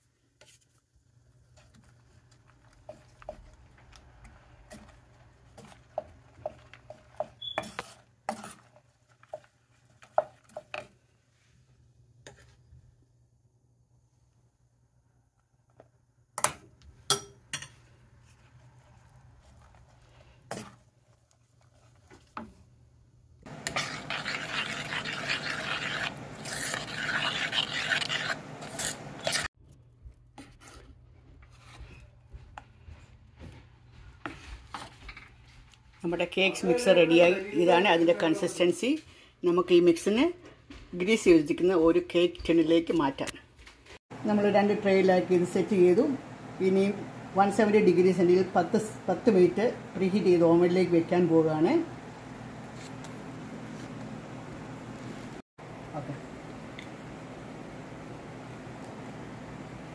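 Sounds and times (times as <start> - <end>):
spatula scraping metal pot: 1.6 - 10.9, 23.5 - 29.5.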